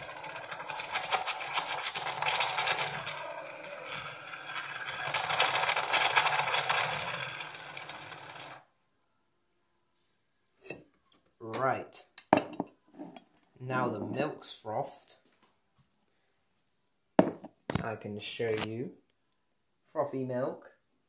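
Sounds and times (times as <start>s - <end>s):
steam wand frothing milk: 0.0s - 8.6s.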